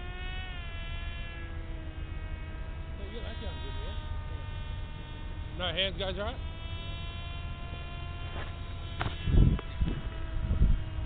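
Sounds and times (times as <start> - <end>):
high electrical whine: 0.0 - 11.0.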